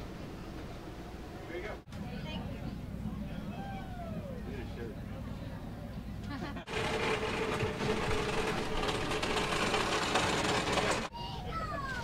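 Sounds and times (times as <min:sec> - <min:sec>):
small motor humming: 0:06.7 - 0:11.1.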